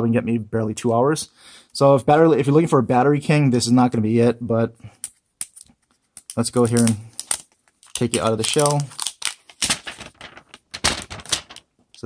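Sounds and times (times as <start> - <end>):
plastic sleeve crackling: 6.2 - 12.0.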